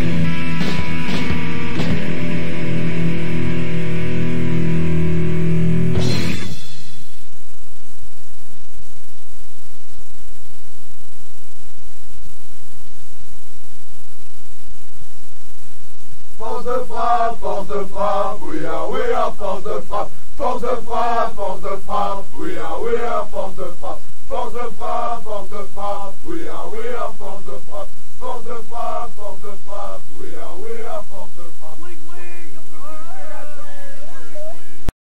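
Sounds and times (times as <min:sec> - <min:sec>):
sustained electric guitar chord: 0:00.0 - 0:07.0
loud hiss: 0:05.6 - 0:33.0
final band hit: 0:05.9 - 0:07.2
man chanting: 0:16.4 - 0:34.9.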